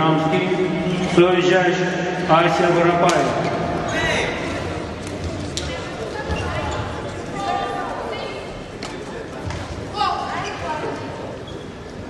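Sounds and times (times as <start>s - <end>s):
shoes squeaking on court: 5.2s - 7.4s.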